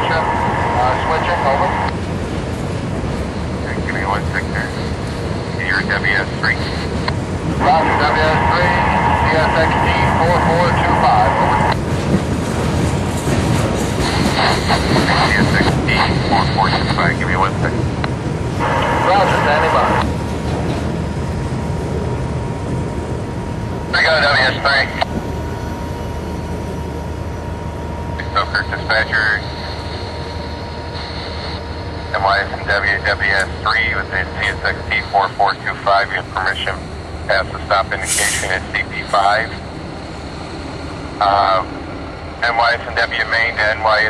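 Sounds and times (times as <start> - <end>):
radio hiss: 0.0 - 2.0, 3.6 - 11.8, 14.0 - 17.7, 18.6 - 20.1, 23.9 - 25.1, 28.2 - 39.7, 41.2 - 41.8, 42.4 - 44.0
scanner radio voice transmission: 0.0 - 2.0, 3.6 - 11.8, 14.0 - 17.9, 18.6 - 20.1, 23.9 - 25.1, 28.1 - 39.8, 41.2 - 44.0
diesel locomotive rumble: 0.0 - 44.0.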